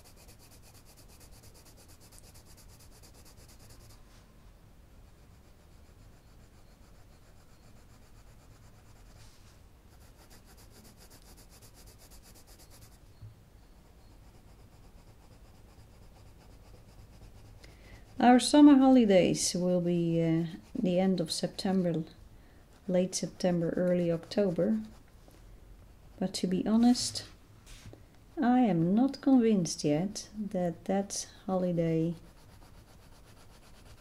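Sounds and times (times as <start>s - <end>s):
coloured pencil scratching on paper: 0.0s - 4.1s, 5.1s - 25.2s, 26.1s - 27.2s, 28.4s - 29.5s, 31.9s - 34.0s.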